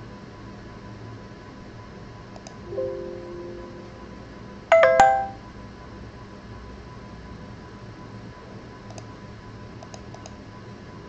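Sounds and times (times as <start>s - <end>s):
short bright chime: 2.7s - 4.1s, 4.7s - 5.4s.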